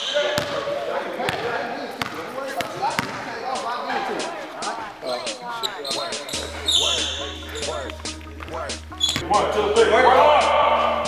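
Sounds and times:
basketball bouncing on wooden floor: 1.3s - 3.2s, 7.9s - 9.3s
background voices: 2.2s - 11.0s
deep bass music: 6.3s - 11.0s.

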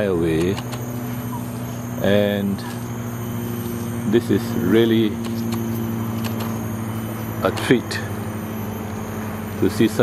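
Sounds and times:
motor humming: 0.0s - 10.0s.

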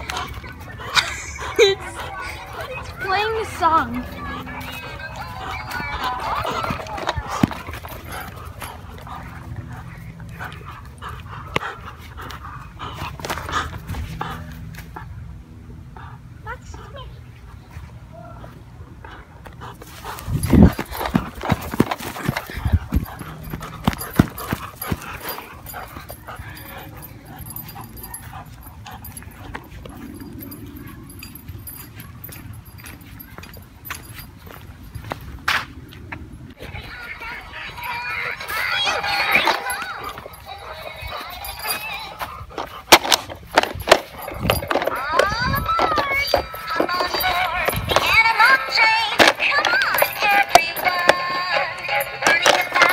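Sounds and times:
dog sounds: 0.0s - 52.9s
plastic toy clattering and knocking: 52.2s - 52.9s.

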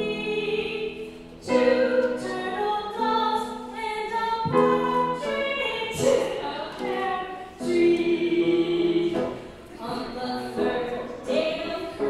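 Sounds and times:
women singing together: 0.0s - 12.0s.

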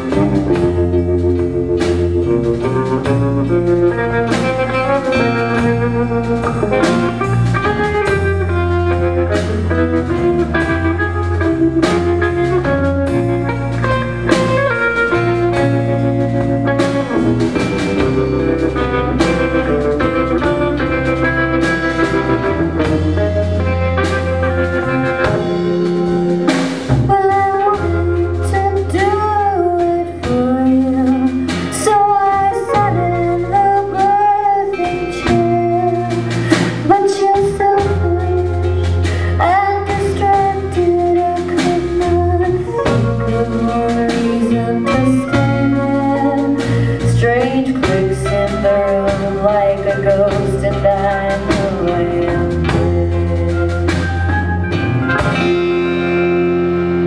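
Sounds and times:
drum kit: 0.0s - 57.0s
electric bass notes: 0.0s - 57.0s
guitars picking notes: 0.0s - 57.0s
live rock band playing: 0.0s - 57.0s.

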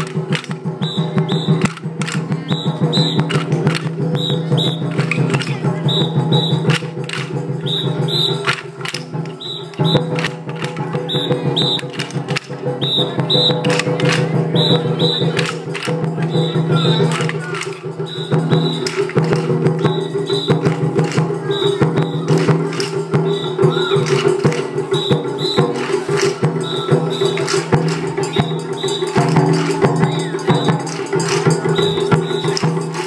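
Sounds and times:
festival percussion music: 0.0s - 33.0s.

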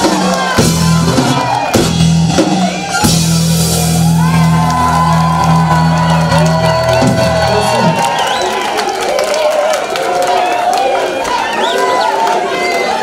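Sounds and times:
live band holding a chord: 0.0s - 8.3s
audience cheering and shouting: 0.0s - 13.0s.

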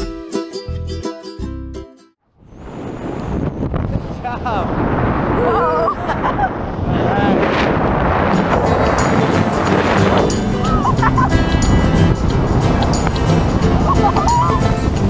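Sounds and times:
wind rushing over microphone: 2.3s - 15.0s.

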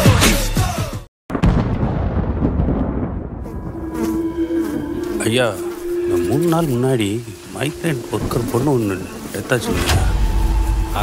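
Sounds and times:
deep boom rumble: 1.3s - 4.0s
fly buzzing: 3.4s - 11.0s.

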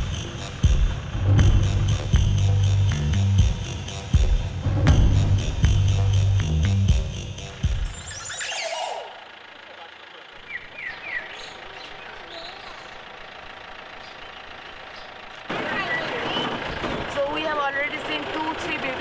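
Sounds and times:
background music: 0.0s - 9.1s
jeep engine running: 0.0s - 19.0s
voices: 7.4s - 19.0s
bird chirps: 7.7s - 15.3s.

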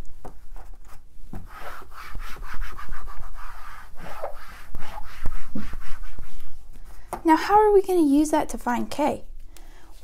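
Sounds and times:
eraser rubbing on whiteboard: 1.4s - 6.6s.

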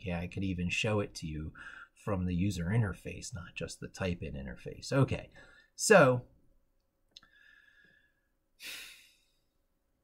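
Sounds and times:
person sighing: 8.6s - 9.5s.

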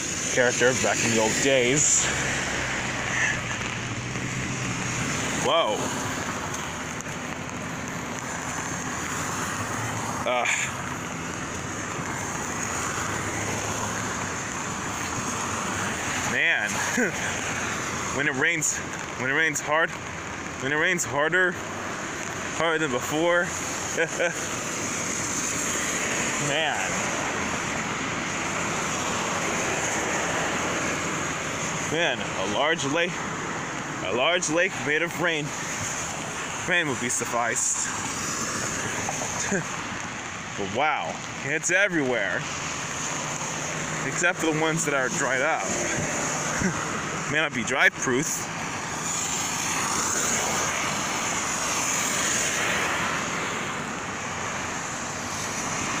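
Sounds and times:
car tyres on wet road: 0.0s - 56.0s
heavy rain falling: 0.0s - 56.0s.

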